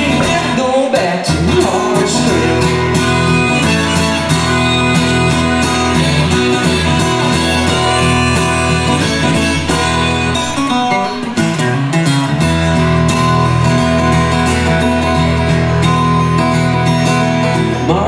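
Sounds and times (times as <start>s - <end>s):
acoustic guitar strumming: 0.0s - 18.0s.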